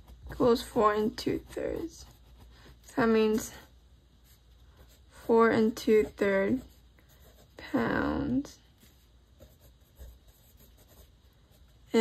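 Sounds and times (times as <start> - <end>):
person speaking: 0.0 - 11.0
pencil scratching on paper: 0.0 - 11.9.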